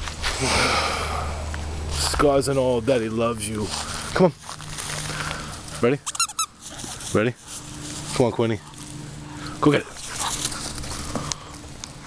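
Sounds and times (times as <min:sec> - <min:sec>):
short high-pitched squeaks: 0:06.0 - 0:06.6.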